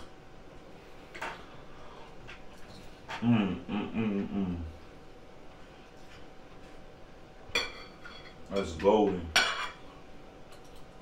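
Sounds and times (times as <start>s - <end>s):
quiet room noise: 0.0s - 11.0s.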